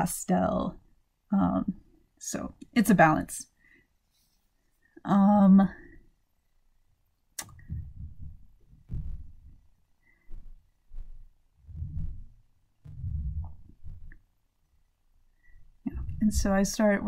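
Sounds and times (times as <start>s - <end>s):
sharp click: 7.4s - 7.6s
dull low knocks and rubs: 7.5s - 14.4s, 15.5s - 17.0s
brush mixing paint on palette: 10.3s - 14.2s.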